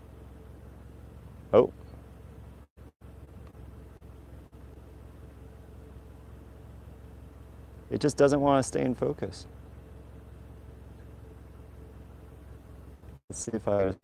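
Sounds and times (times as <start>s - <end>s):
low background hum: 0.0s - 14.0s.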